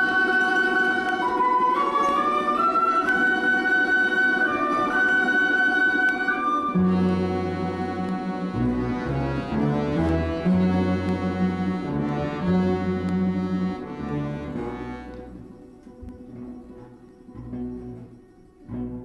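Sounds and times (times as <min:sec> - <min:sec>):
folk orchestra playing chords: 0:00.0 - 0:19.0.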